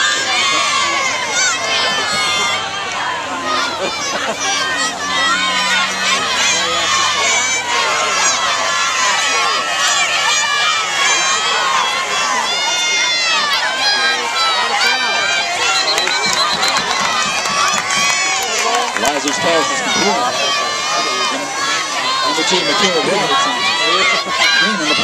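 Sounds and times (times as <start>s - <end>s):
crowd shouting and cheering: 0.0s - 25.0s
referee's whistle trill: 15.6s - 18.4s.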